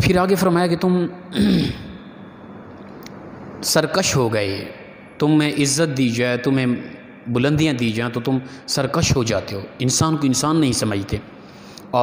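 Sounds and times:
faint steady hum: 0.0s - 12.0s
man clearing his throat: 1.3s - 2.0s.

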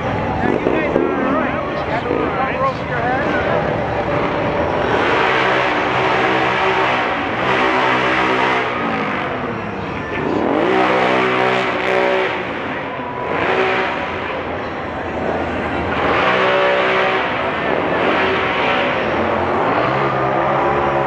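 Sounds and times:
vehicle engine revving: 0.0s - 21.0s.

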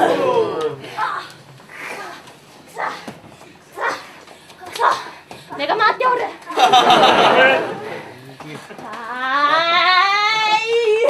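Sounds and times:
people shouting: 0.0s - 1.0s.

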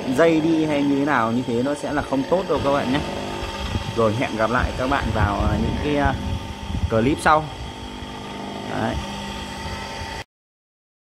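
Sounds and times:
electric motor humming: 0.0s - 10.3s.

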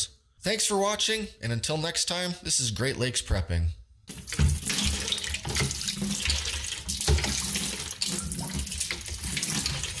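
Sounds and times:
water pouring into a bucket: 4.1s - 10.0s.

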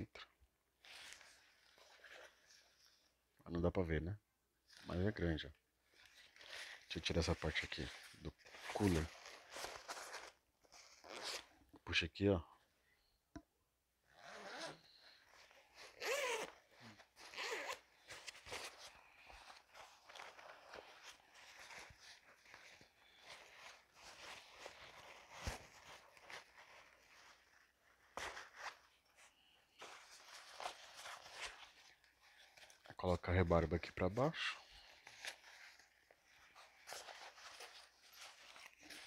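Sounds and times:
fabric rustling: 0.8s - 3.2s, 5.8s - 11.5s, 14.1s - 39.0s
zipper pulled on fabric bag: 14.1s - 27.4s.

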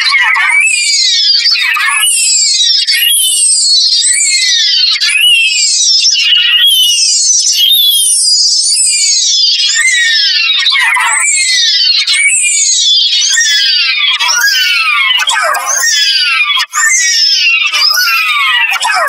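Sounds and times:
pitched-up processed voice: 14.0s - 19.0s.

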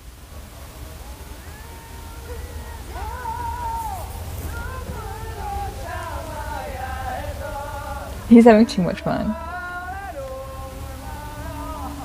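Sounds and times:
low steady hum: 0.0s - 12.0s
young man singing: 0.0s - 12.0s.

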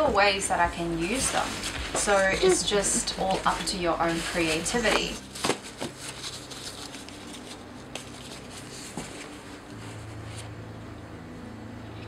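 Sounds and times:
steady low hum: 0.0s - 12.0s
paper rustling: 1.0s - 10.5s.

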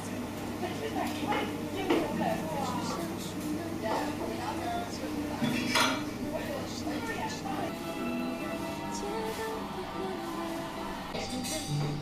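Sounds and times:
chatter of diners: 0.0s - 12.0s
dish clinking on wooden table: 5.4s - 6.1s.

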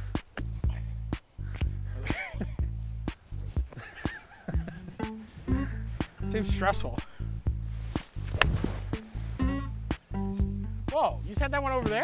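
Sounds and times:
background music with bass line: 0.0s - 12.0s
golf club striking ball: 8.3s - 8.7s.

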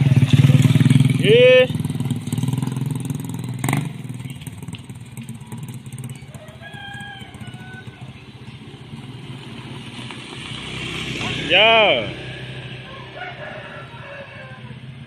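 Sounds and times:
small motorcycle engine: 0.0s - 14.0s
scooter engine approaching: 0.0s - 15.0s.

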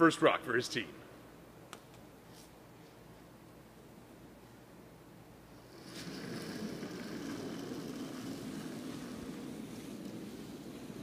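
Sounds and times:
curling stone rumbling on ice: 5.7s - 11.0s.

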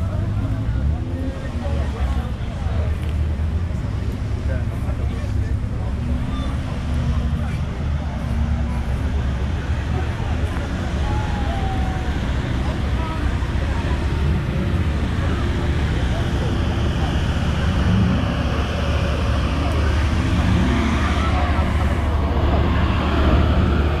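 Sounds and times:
people chattering: 0.0s - 24.0s
car engine idling: 7.1s - 24.0s.

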